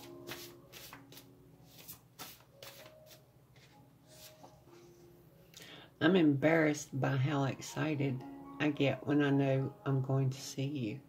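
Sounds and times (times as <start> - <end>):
cards being shuffled: 0.0 - 4.3.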